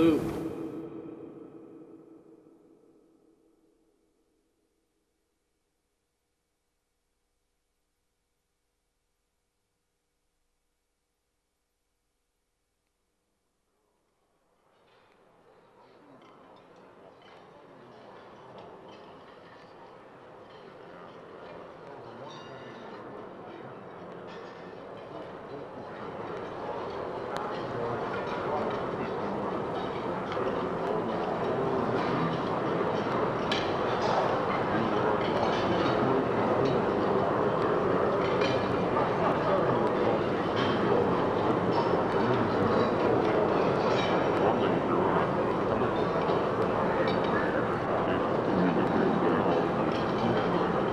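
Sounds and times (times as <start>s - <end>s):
ambient drone music: 0.0s - 3.4s.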